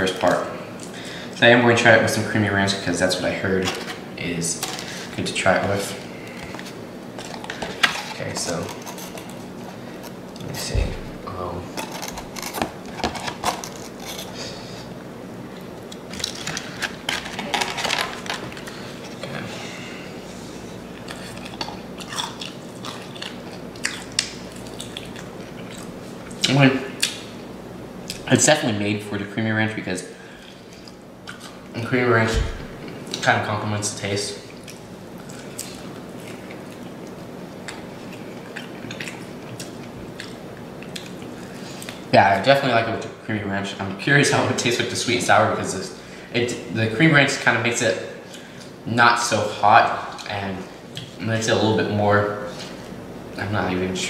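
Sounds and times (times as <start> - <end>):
crunchy food chewing: 20.9 - 27.2.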